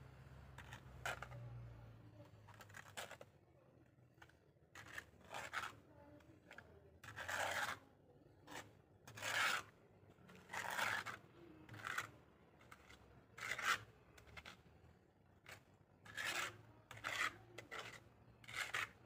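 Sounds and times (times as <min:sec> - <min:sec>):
trowel scraping cement render: 0:00.5 - 0:19.0.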